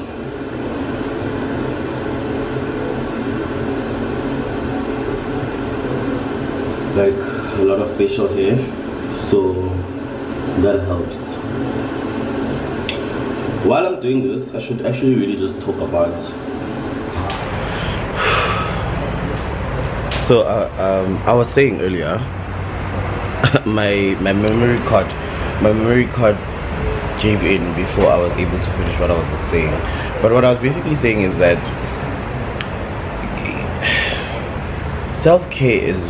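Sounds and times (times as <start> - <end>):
mechanical whirring hum: 0.0 - 36.0.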